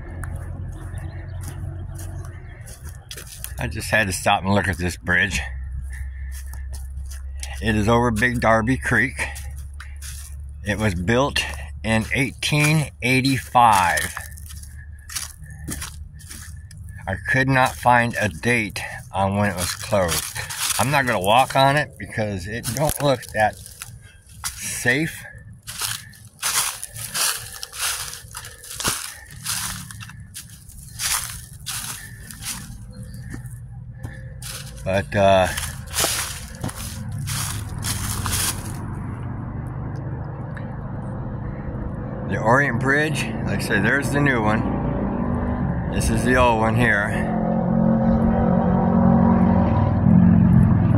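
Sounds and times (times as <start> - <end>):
low steady rumble: 0.0 - 47.3
low hum of traffic: 0.0 - 50.9
footsteps crunching dry leaves: 0.1 - 39.0.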